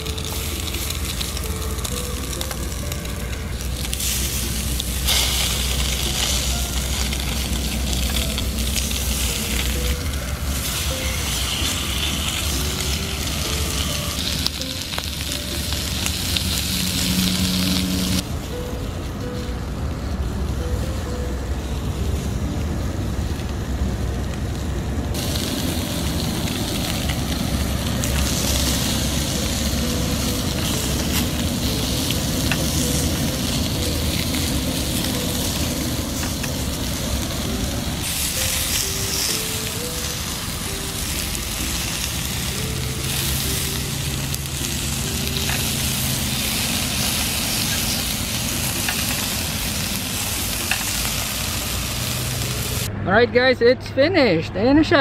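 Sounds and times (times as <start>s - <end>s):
fish fillets sizzling in a pan: 0.0s - 18.2s, 38.0s - 52.8s.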